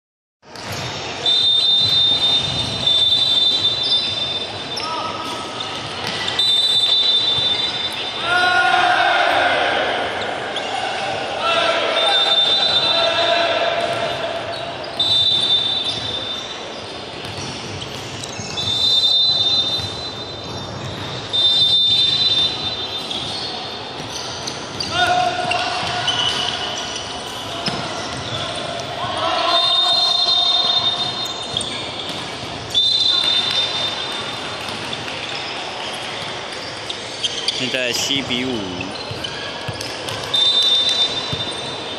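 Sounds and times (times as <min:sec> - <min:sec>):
crowd shouting and chanting: 0:07.5 - 0:15.7, 0:24.4 - 0:34.3
volleyball hits: 0:27.4 - 0:29.2, 0:30.4 - 0:35.4, 0:39.1 - 0:41.5.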